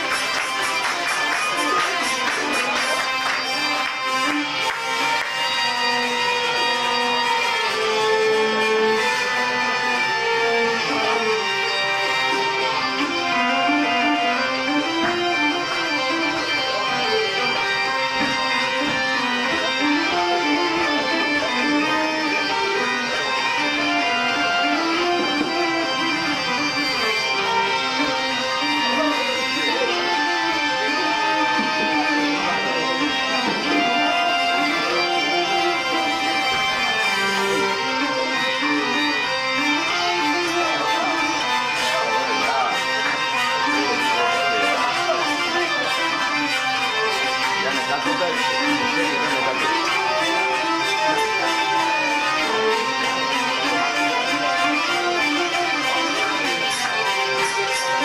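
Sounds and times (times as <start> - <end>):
hurdy-gurdies and accordion folk music: 0.0 - 58.0.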